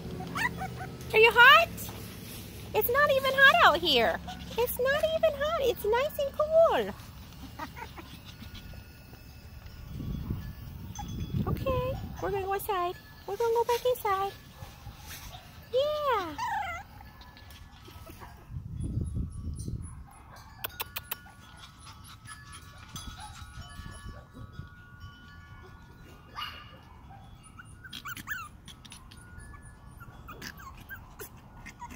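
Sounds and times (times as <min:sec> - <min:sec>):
puppy yelp: 0:00.0 - 0:01.4, 0:06.7 - 0:08.9, 0:15.0 - 0:18.5, 0:19.8 - 0:24.4, 0:25.6 - 0:31.9
puppies yipping and whimpering: 0:00.0 - 0:01.6, 0:02.8 - 0:11.3, 0:13.9 - 0:18.6, 0:19.3 - 0:31.9.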